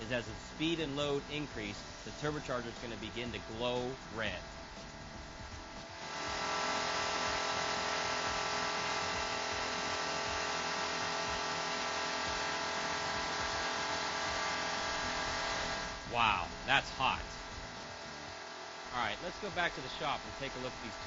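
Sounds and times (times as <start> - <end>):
engine running at high speed: 0.0 - 21.0.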